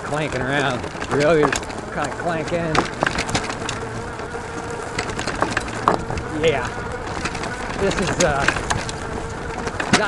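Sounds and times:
bike clanking and rattling: 0:00.0 - 0:10.0
sharp knocks of bike parts: 0:09.6 - 0:10.0.

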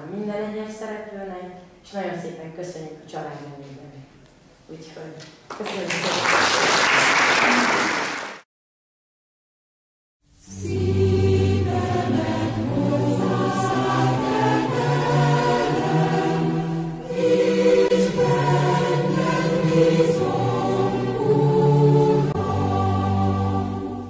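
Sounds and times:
choir singing slow chords: 0:10.3 - 0:24.0.

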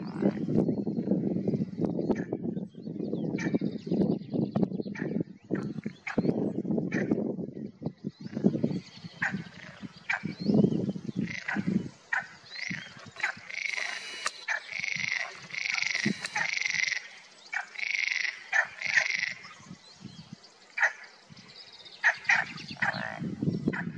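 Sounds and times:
frogs croaking buzzily: 0:09.2 - 0:10.3, 0:11.2 - 0:19.6, 0:22.0 - 0:23.9
sharp frog calls and clicks: 0:11.2 - 0:11.6, 0:12.2 - 0:19.4.

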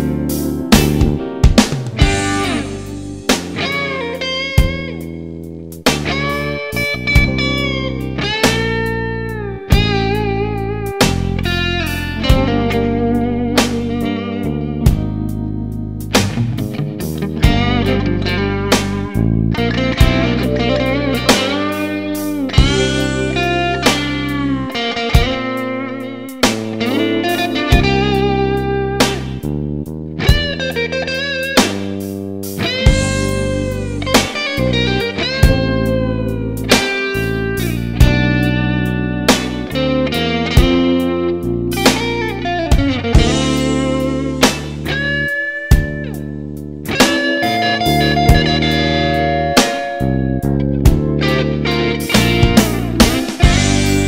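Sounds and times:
electric guitar blues lead: 0:00.0 - 0:54.0
low bass notes: 0:00.0 - 0:54.0
drum beat: 0:00.8 - 0:04.0, 0:04.6 - 0:05.0, 0:17.4 - 0:17.7, 0:20.0 - 0:24.4, 0:26.4 - 0:28.3, 0:32.8 - 0:34.6, 0:42.8 - 0:45.0, 0:45.7 - 0:46.1, 0:52.1 - 0:54.0.

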